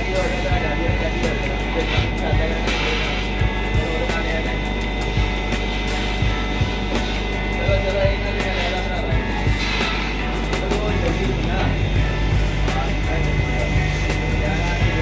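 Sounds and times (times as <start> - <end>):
laser cutter humming and whining: 0.0 - 15.0.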